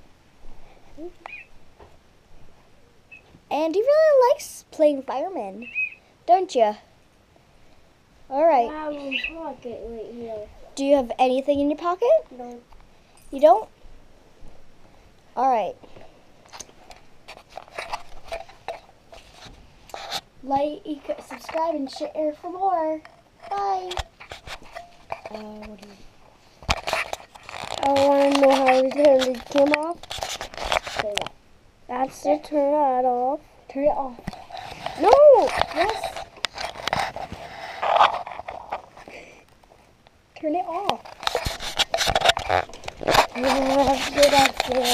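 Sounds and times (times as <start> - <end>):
camera handling rustling: 16.5 - 20.3, 23.1 - 25.9, 26.6 - 31.3, 34.2 - 39.8, 40.8 - 44.9.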